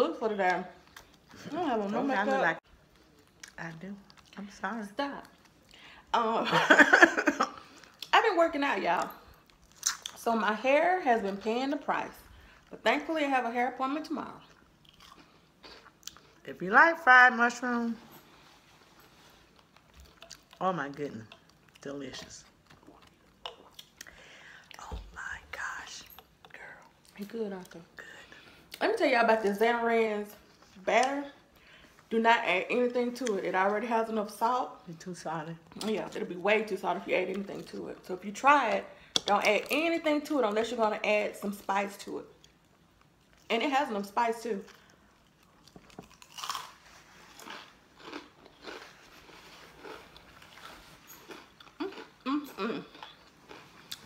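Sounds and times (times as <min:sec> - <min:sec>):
chewing fried food: 0:00.7 - 0:05.9, 0:09.1 - 0:10.2, 0:14.3 - 0:16.4, 0:18.3 - 0:24.8, 0:44.6 - 0:54.0.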